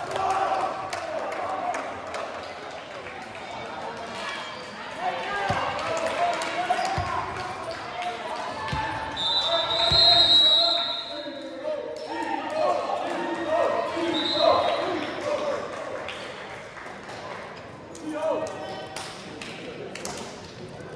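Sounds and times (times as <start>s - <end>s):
players' voices echoing: 0.0s - 16.5s
referee's whistle: 9.1s - 11.3s, 14.0s - 14.9s.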